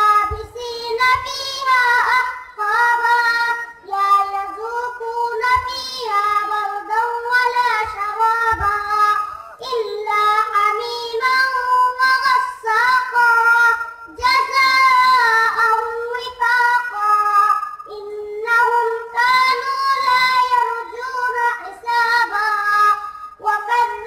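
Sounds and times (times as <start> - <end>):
boy chanting melodically: 0.0 - 24.0.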